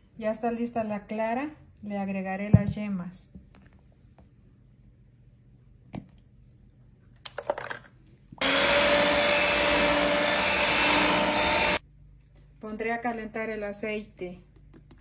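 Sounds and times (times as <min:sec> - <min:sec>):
electric mixer running: 0:08.4 - 0:11.8.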